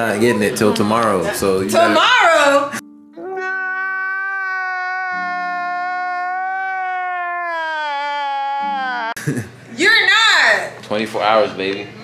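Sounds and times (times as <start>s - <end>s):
man crying wail: 3.2s - 9.2s.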